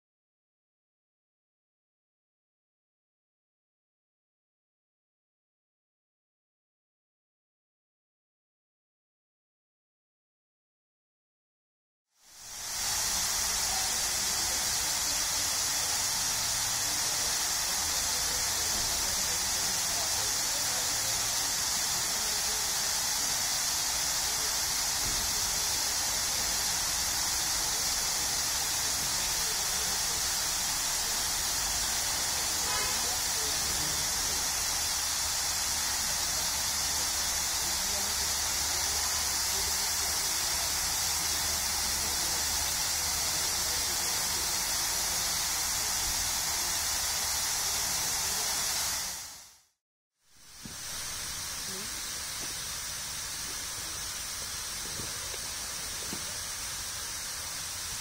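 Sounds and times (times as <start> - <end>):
fountain spray hissing: 12.2 - 49.6, 50.4 - 58.0.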